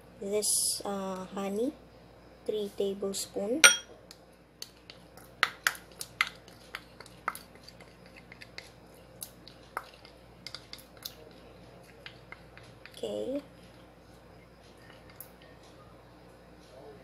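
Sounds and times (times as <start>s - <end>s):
spoon clicking on glass cup: 3.6s - 3.8s.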